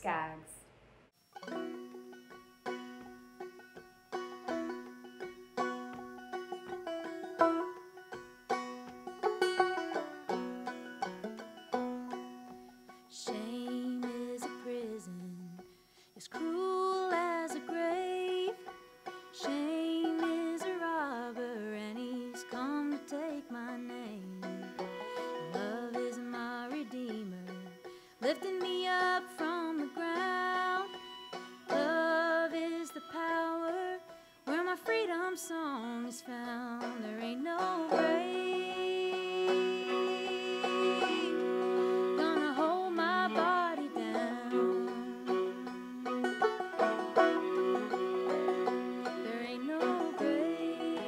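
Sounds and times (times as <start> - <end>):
bowed fiddle melody: 1.4 - 15.6, 16.3 - 51.0
banjo picking: 1.4 - 51.0
person singing: 19.4 - 31.0, 31.7 - 51.0.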